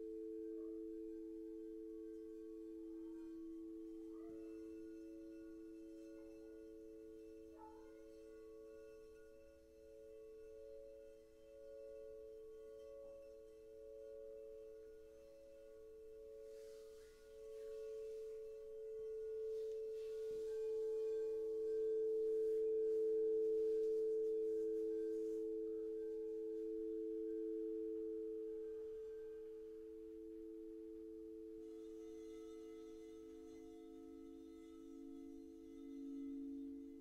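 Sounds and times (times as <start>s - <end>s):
crystal singing bowls ringing: 0.0s - 37.0s.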